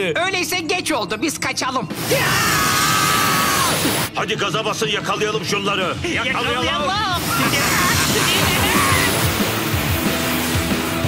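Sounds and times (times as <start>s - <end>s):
fast background music: 0.1s - 11.0s
cartoon spaceship rushing hiss: 7.2s - 10.8s.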